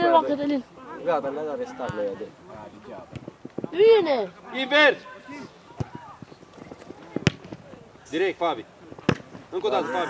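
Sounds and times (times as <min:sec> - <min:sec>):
faint shouts of players: 0:09.7 - 0:10.0.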